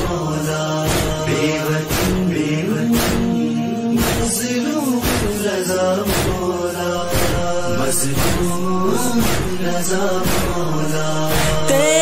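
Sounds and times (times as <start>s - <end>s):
men chanting a drone: 0.0s - 12.0s
person singing a lament: 0.0s - 12.0s
soft beat: 7.0s - 12.0s.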